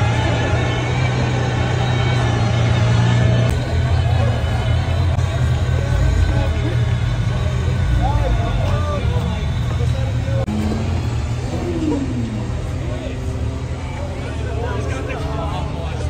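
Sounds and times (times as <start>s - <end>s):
car engine idling: 0.0s - 16.0s
crowd chatter: 0.0s - 16.0s.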